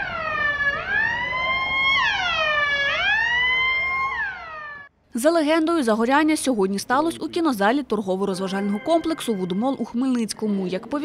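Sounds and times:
electronic siren wailing: 0.0 - 4.9.

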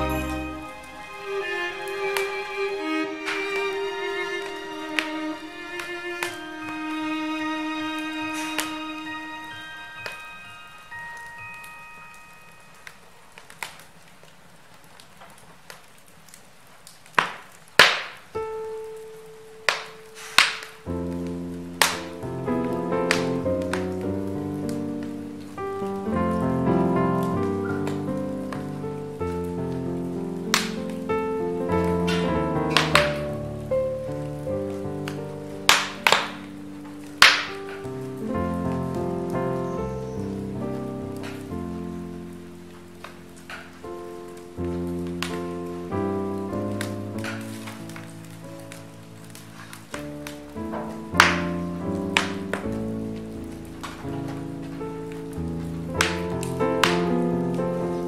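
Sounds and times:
soft instrumental christmas music: 0.0 - 14.1, 18.4 - 58.0
log fire crackling and popping: 0.0 - 58.0.

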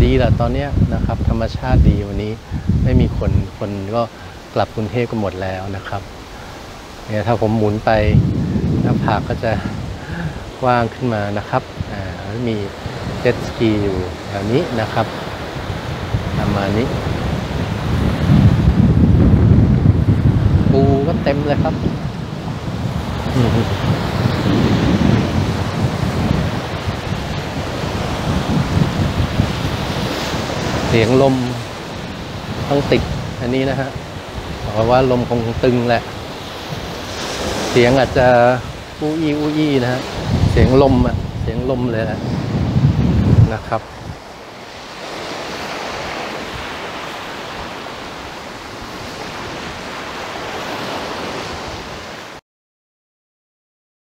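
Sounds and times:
wind rushing: 0.0 - 4.7, 5.8 - 10.9, 15.2 - 49.9
wind buffeting microphone: 0.0 - 52.3
sea surf: 0.0 - 52.4
small waves breaking on sand: 0.7 - 52.4.

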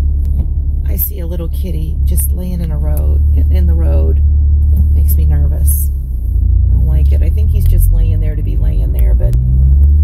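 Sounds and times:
car idling from inside cabin: 0.0 - 10.0
woman's voice: 0.8 - 4.2, 4.8 - 6.0, 6.8 - 9.4.

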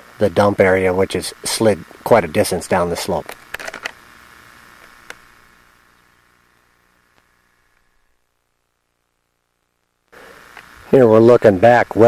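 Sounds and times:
camcorder hiss and hum: 0.0 - 12.0.

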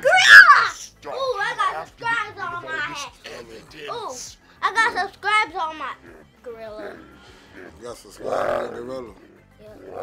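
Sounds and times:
cartoon creature roars: 7.6 - 9.0.

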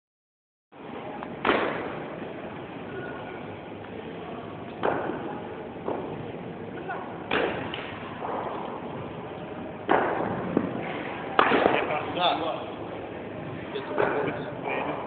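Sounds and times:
cricket ball knocking bat: 9.9 - 10.7.

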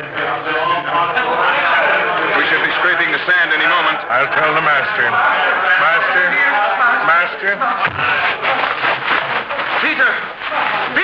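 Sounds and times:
excited crowd voices: 0.0 - 11.0.

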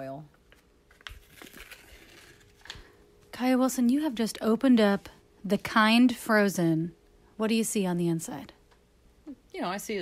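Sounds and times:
foil seal crinkling and tearing: 0.6 - 2.9.

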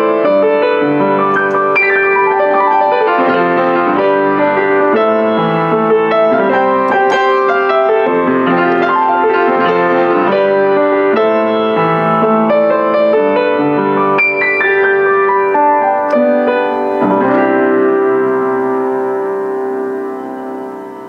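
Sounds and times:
upright piano chords: 0.0 - 21.0.

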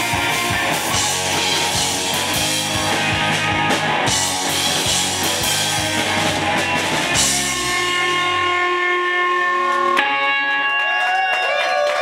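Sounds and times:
electric guitar chord ringing: 0.0 - 10.8
bass guitar: 0.0 - 11.6
drums: 0.0 - 12.0.

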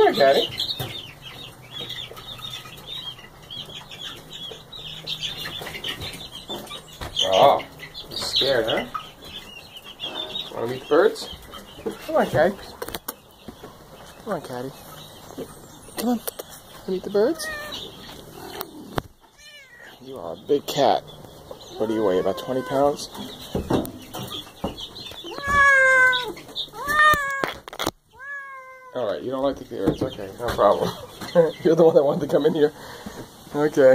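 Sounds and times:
chicks peeping: 0.0 - 33.9
cat meowing: 17.3 - 17.8, 19.4 - 20.0, 21.7 - 23.0, 25.3 - 29.0.

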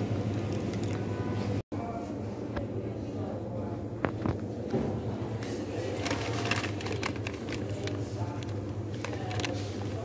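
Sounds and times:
plastic snack packet crinkling: 6.0 - 10.0.

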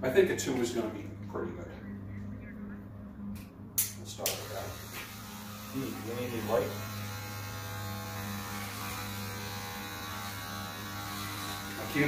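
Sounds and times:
electric hair clippers humming: 3.8 - 12.0.

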